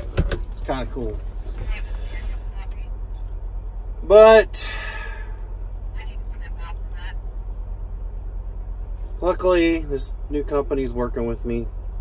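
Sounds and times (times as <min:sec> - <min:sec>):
truck diesel engine rumble: 0:00.0 - 0:12.0.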